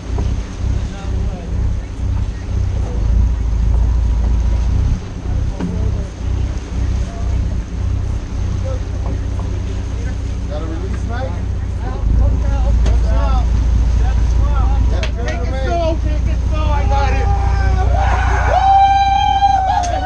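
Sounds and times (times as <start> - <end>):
boat engines droning: 0.0 - 20.0.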